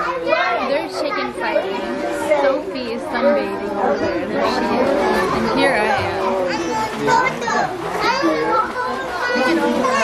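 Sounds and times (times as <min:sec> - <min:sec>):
children shouting: 0:00.0 - 0:02.5, 0:03.7 - 0:10.0.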